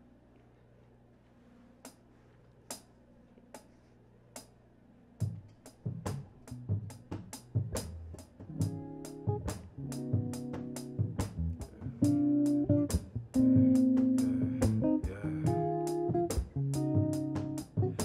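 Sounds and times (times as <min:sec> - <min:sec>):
bass and chords: 0:05.2 - 0:18.0
drum kit: 0:05.2 - 0:18.0.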